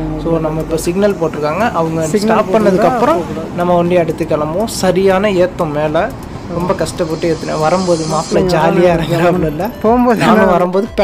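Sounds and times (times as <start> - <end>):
faint hiss: 1.4 - 10.6
person's voice in pitched phrases: 7.4 - 9.5.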